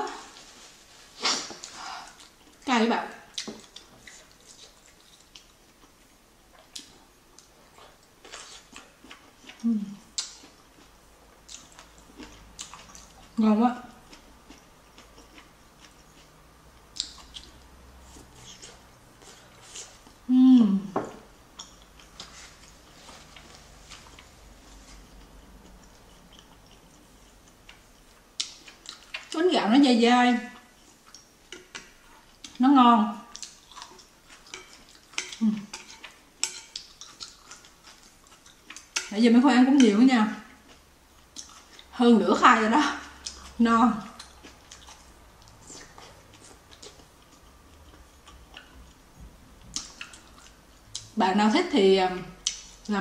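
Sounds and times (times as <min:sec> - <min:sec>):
person sniffing: 0:01.2 - 0:02.2
mouth clicks and chewing: 0:03.3 - 0:13.4, 0:14.0 - 0:20.1, 0:21.5 - 0:29.4, 0:33.3 - 0:39.1, 0:40.6 - 0:41.9, 0:43.0 - 0:49.0, 0:49.6 - 0:51.2, 0:52.4 - 0:52.9.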